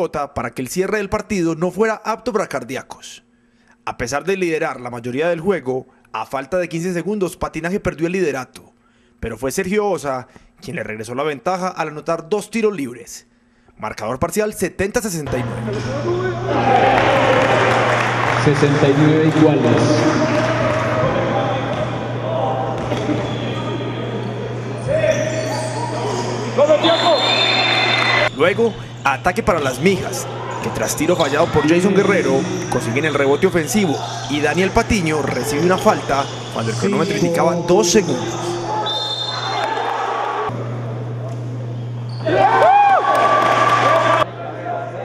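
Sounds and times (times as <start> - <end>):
low electrical hum: 0.0 - 45.0
players and spectators shouting: 15.6 - 18.5, 19.4 - 28.3, 29.2 - 40.5, 42.2 - 45.0
basketball bouncing on court: 22.7 - 23.5
voices and shouts: 24.8 - 28.3.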